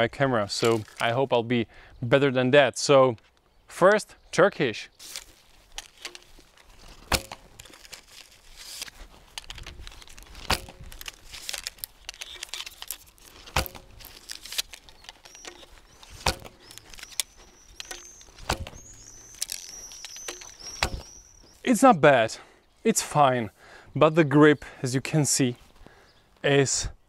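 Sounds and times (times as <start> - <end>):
arrows striking target: 5.1 - 7.8, 8.7 - 21.2.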